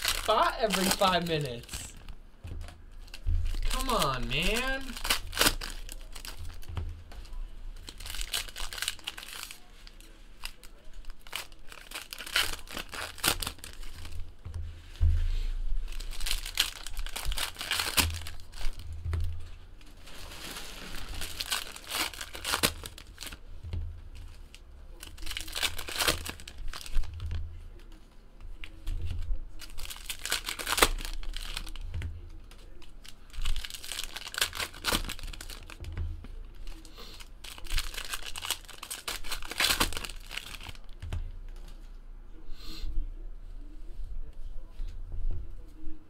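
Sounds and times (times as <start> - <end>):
foil wrappers crinkling and tearing: 0.0 - 2.2, 2.9 - 14.3, 15.9 - 23.5, 24.1 - 28.0, 28.6 - 35.9, 36.5 - 41.8.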